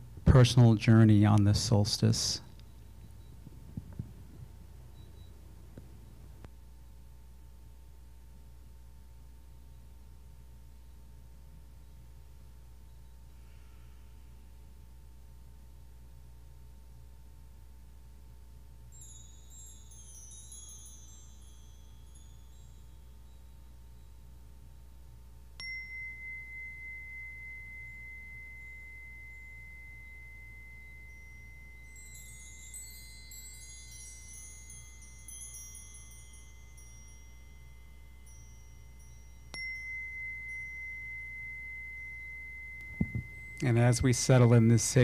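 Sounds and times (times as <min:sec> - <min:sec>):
high tinkling chimes: 0:00.0 - 0:08.5, 0:10.8 - 0:15.2, 0:17.4 - 0:45.0
high bell tone ringing: 0:18.9 - 0:24.6, 0:25.6 - 0:45.0.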